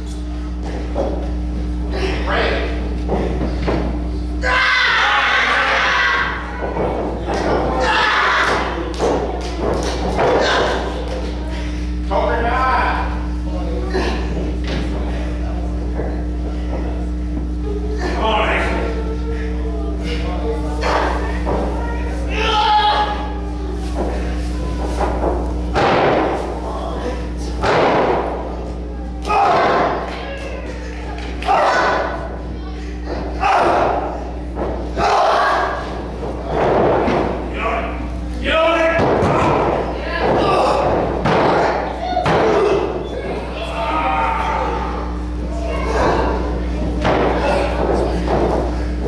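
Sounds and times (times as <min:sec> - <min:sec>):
crowd shouting and cheering: 0:04.3 - 0:11.5, 0:20.8 - 0:24.1, 0:27.4 - 0:48.9.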